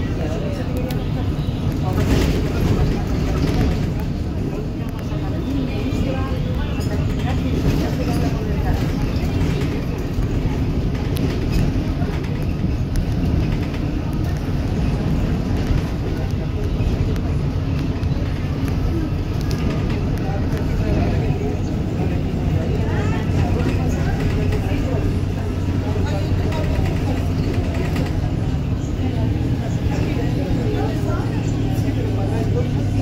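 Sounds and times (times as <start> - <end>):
bus engine and road rumble: 0.0 - 33.0
body clicks and rattles: 1.6 - 5.1, 6.8 - 32.9.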